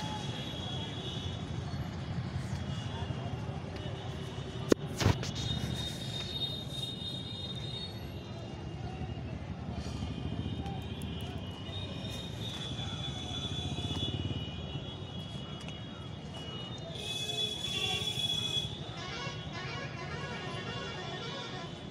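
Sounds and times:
vehicle rumbling on road: 0.0s - 14.6s.

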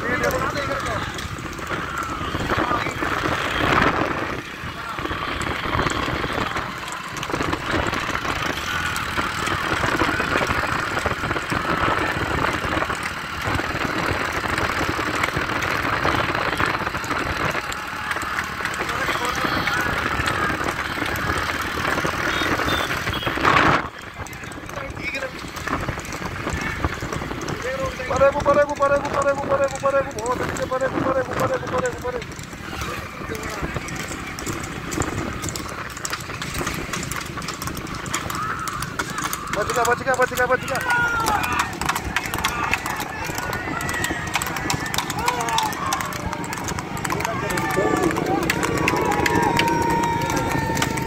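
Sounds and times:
horse hooves clip-clopping on asphalt: 0.0s - 51.0s
loud rush of noise: 0.0s - 51.0s
motorcycles running: 0.0s - 51.0s
men shouting: 38.0s - 51.0s.

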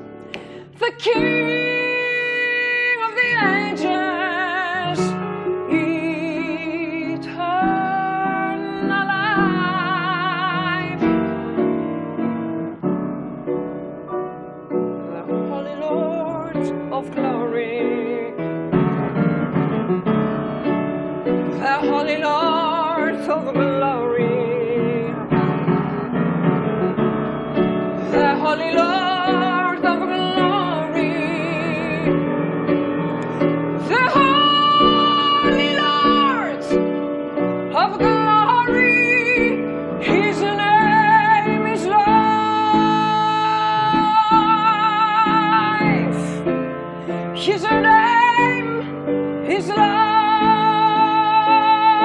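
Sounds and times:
upright piano chords: 0.0s - 52.0s
woman singing with vibrato: 0.5s - 11.3s, 15.1s - 18.4s, 21.5s - 25.3s, 28.0s - 32.2s, 33.8s - 36.9s, 37.7s - 46.5s, 47.4s - 52.0s.

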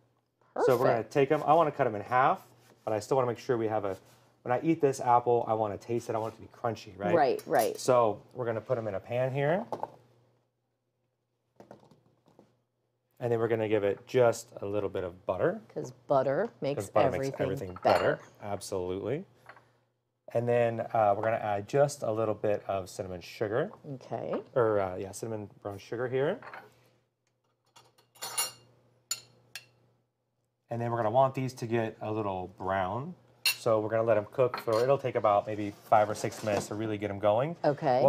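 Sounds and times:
utensil clinking ceramic bowl: 17.1s - 18.3s, 34.5s - 35.0s.

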